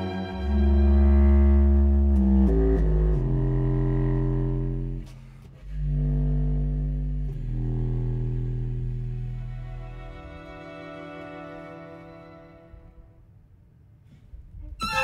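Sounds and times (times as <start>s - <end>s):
contrabass clarinet low notes: 0.0s - 13.2s, 14.5s - 15.0s.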